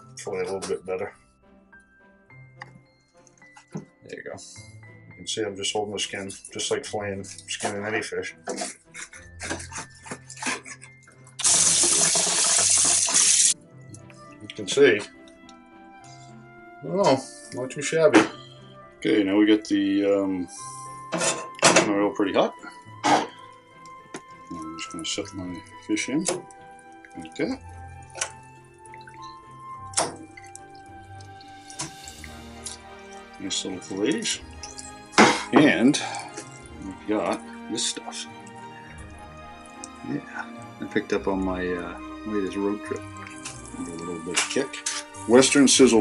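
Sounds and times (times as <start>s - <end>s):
music with held notes: 0.0s - 46.0s
oil spitting and popping: 8.5s - 16.3s, 22.8s - 41.2s, 42.0s - 45.6s
tap water running hard: 11.4s - 13.6s, 24.3s - 40.7s, 42.1s - 45.7s.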